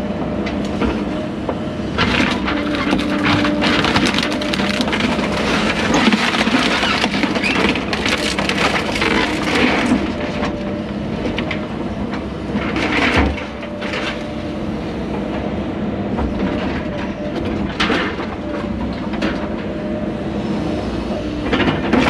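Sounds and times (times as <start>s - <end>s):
excavator engine and hydraulics: 0.0s - 22.0s
wood cracking and splintering: 2.0s - 10.5s.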